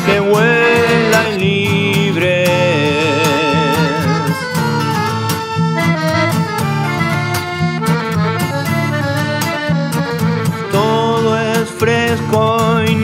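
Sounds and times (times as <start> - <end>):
accordion melody: 0.0 - 13.0
strummed acoustic guitar: 0.0 - 13.0.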